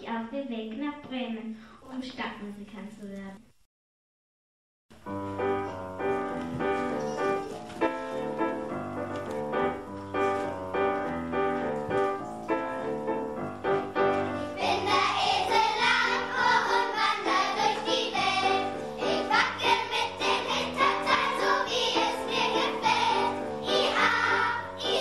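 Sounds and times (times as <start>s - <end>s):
piano playing: 4.9s - 25.0s
children's choir singing: 14.2s - 25.0s.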